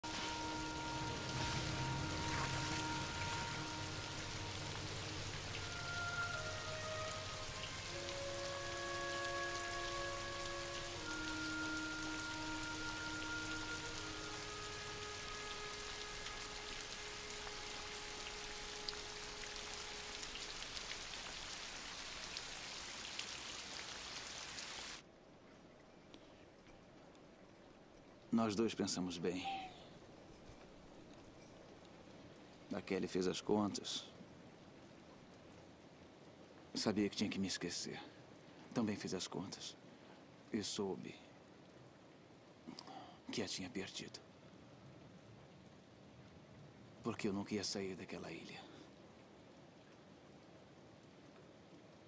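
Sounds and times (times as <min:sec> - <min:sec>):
soft film score: 0:00.0 - 0:22.5, 0:25.0 - 0:51.9
heavy rain falling: 0:00.0 - 0:25.0.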